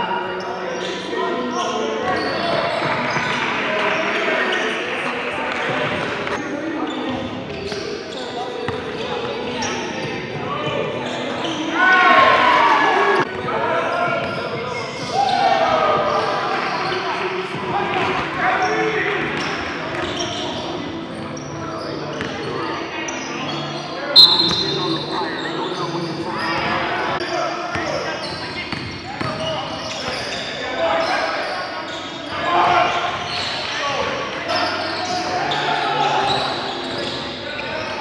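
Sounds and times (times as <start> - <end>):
players calling out: 9.3 - 38.0.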